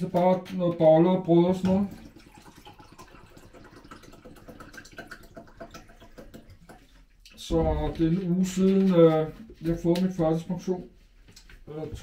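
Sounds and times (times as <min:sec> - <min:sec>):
liquid trickling into a glass: 0:01.6 - 0:07.4.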